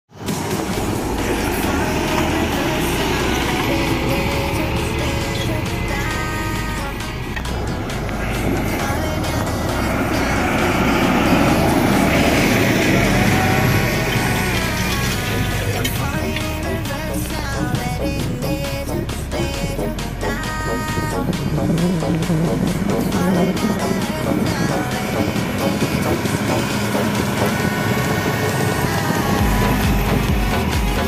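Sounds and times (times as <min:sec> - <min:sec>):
pop music: 0:00.1 - 0:31.0
tractor engine running: 0:00.1 - 0:31.0.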